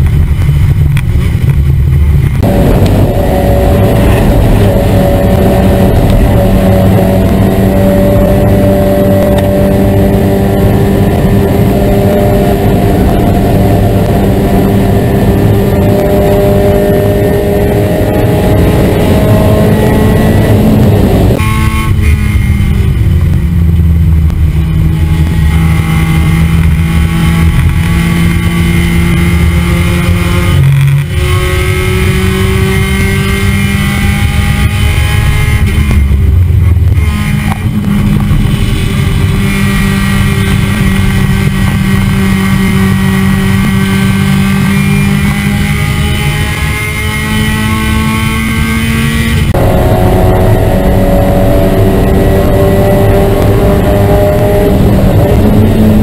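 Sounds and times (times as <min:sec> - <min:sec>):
race car engine at high revs: 0:00.0 - 0:56.0
road and wind noise: 0:00.0 - 0:56.0.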